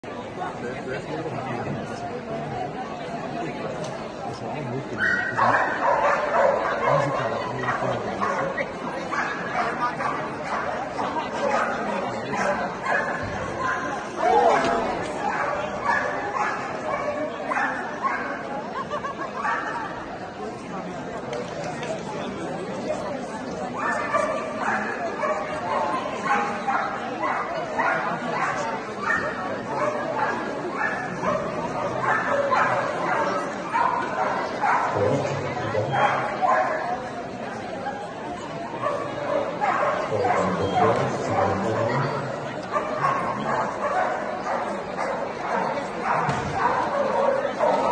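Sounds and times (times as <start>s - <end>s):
crowd voices: 0.0s - 47.9s
dog barking: 5.0s - 10.7s, 11.4s - 13.8s, 15.3s - 18.4s, 23.8s - 36.8s, 38.8s - 42.0s, 42.7s - 47.9s.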